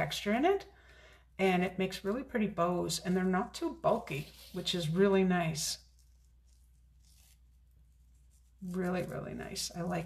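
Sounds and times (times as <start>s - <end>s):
ribbon rustling: 3.0s - 10.0s.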